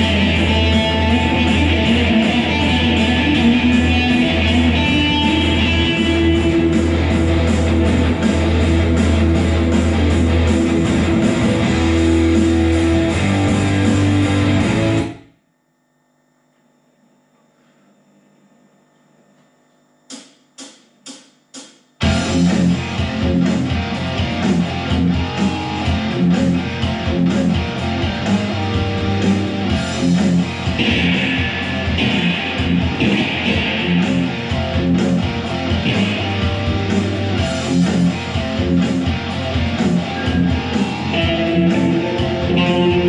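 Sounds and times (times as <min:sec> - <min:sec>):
electric guitar with backing track: 0:00.0 - 0:15.3, 0:22.0 - 0:43.0.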